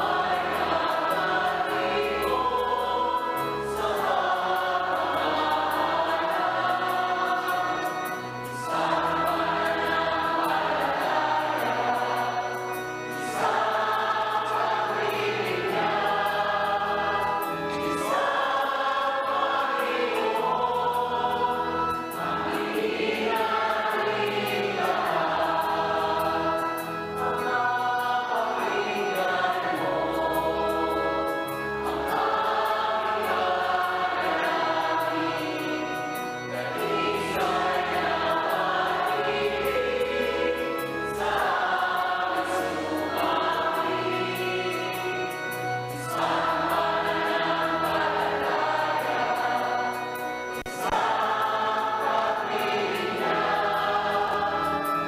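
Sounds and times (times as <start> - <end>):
choir singing a hymn: 0.0 - 55.0
musical accompaniment: 0.0 - 55.0.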